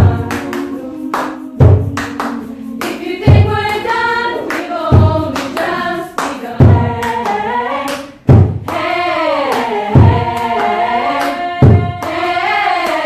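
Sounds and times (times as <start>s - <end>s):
hand claps: 0.0s - 13.0s
women's choir singing: 0.0s - 13.0s
deep drum hits: 8.3s - 8.7s.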